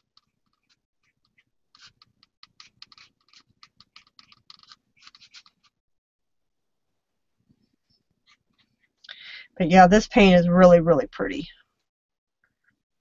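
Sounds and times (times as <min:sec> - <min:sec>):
paintbrush strokes on paper: 0:00.0 - 0:05.8, 0:07.4 - 0:09.0.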